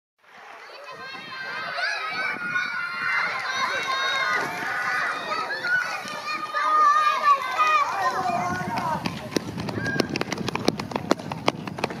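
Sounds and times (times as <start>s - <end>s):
running footsteps on track: 0.2s - 12.0s
children shouting and cheering: 0.4s - 10.3s.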